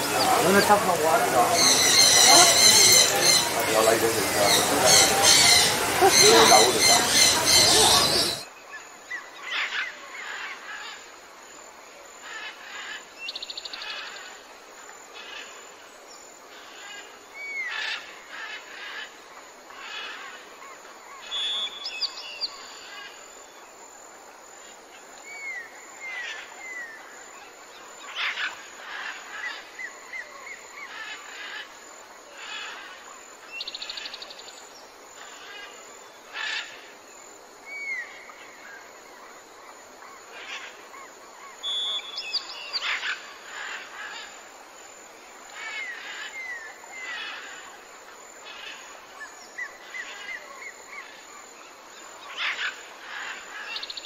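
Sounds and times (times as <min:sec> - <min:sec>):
birds chirping and trilling: 0:00.0 - 0:08.5, 0:40.0 - 0:44.5
background hiss: 0:00.0 - 0:54.0.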